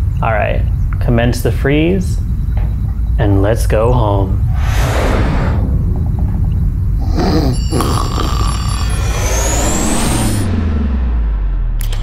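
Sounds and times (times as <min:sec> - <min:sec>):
low falling drone: 0:00.0 - 0:12.0
low spaceship rumble: 0:00.0 - 0:12.0
rising whine: 0:01.7 - 0:12.0
whoosh: 0:04.4 - 0:07.6, 0:08.9 - 0:12.0.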